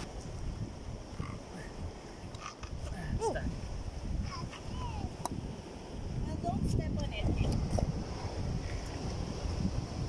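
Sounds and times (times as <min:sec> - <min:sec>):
low wind rumble on microphone: 0:00.0 - 0:10.0.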